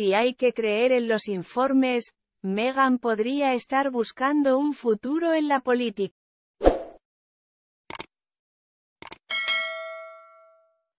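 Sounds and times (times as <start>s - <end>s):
bell ringing: 9.3s - 10.8s.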